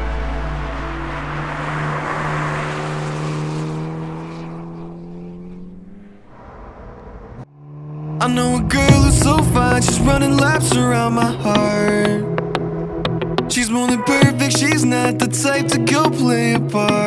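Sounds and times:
car engine driving past: 0.0s - 13.6s.

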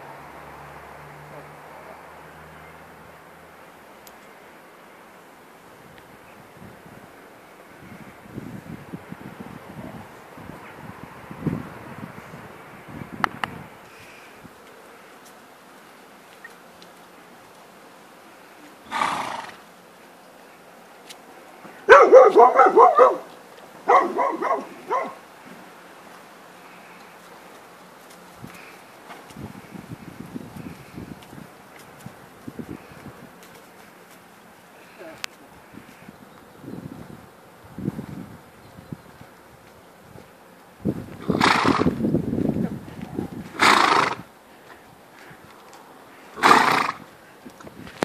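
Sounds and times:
horse neighing: 18.8s - 19.6s, 41.2s - 42.0s, 43.6s - 44.2s, 46.4s - 47.0s
dog barking: 21.9s - 23.3s, 23.9s - 25.2s.

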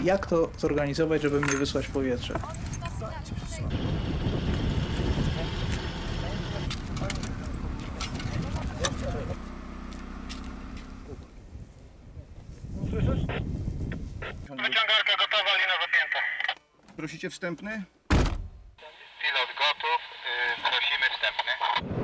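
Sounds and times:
wind noise on microphone: 1.8s - 9.2s, 11.4s - 14.5s, 21.8s - 22.0s
car driving on road: 3.7s - 12.2s
voices: 4.9s - 9.5s, 12.1s - 17.7s, 18.8s - 21.8s.

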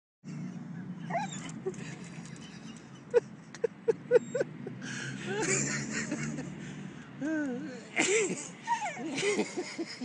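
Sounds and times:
dog whining: 1.1s - 1.6s.

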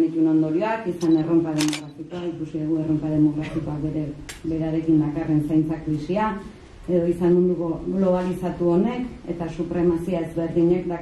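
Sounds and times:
woman speaking into headset microphone: 0.0s - 11.0s.

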